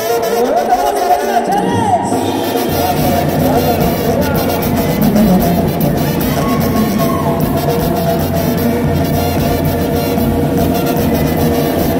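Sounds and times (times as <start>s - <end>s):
live band with brass and percussion: 0.0s - 11.9s.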